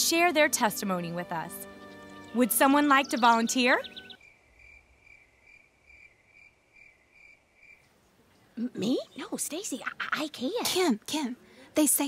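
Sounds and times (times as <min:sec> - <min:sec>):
faint cricket chirps: 0:04.0 - 0:08.6.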